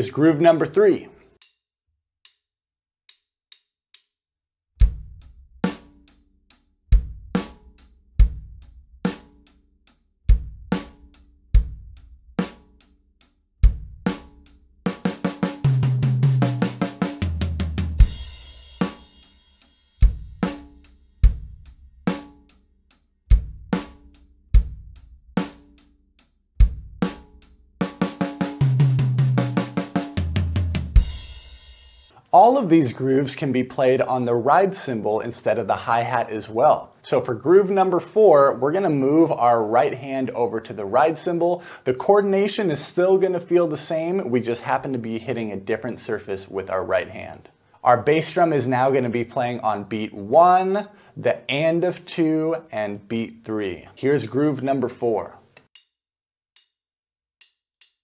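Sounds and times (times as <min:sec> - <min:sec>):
drum kit rock groove: 0:04.8 - 0:09.6, 0:10.3 - 0:12.9, 0:13.6 - 0:22.6, 0:23.3 - 0:25.9, 0:26.6 - 0:32.6
drum fill: 0:13.6 - 0:22.3, 0:26.6 - 0:32.0.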